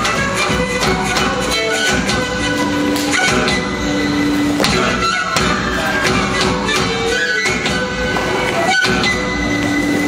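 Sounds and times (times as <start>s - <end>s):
drums: 0.0s - 10.0s
violins: 0.0s - 10.0s.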